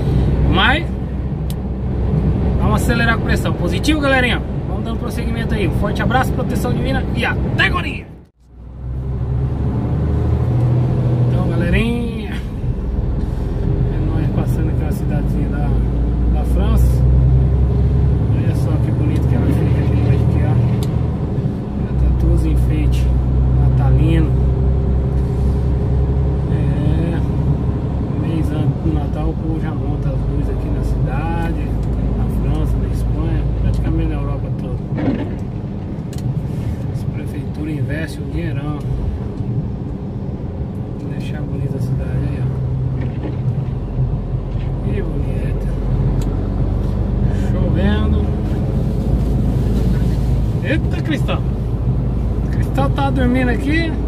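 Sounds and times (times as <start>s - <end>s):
diesel engine droning: 0.0s - 54.0s.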